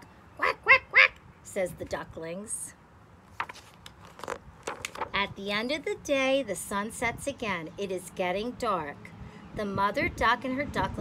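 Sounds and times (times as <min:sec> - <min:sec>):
paper pages rustling: 0:03.3 - 0:05.2.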